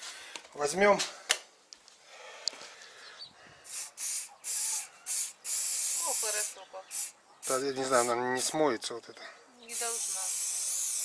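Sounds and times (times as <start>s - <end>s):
spray paint can hissing: 3.7s - 8.6s, 9.7s - 11.0s.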